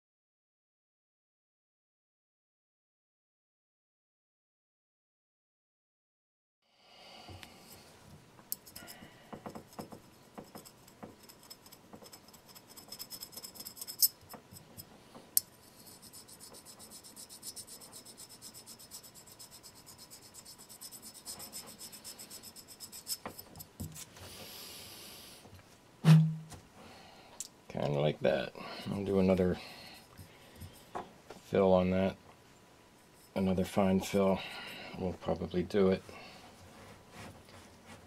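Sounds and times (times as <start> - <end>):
metal file scraping: 8.6 - 23.8.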